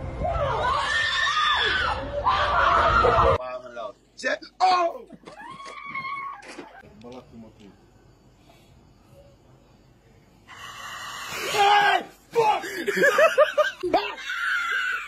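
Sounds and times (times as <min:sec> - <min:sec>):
people screaming: 0:00.1 - 0:03.4, 0:05.2 - 0:06.8, 0:13.9 - 0:15.0.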